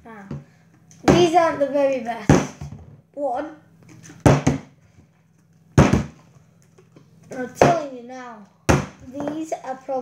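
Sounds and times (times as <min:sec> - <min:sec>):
plastic bottle thudding on table: 0:05.8 - 0:06.2.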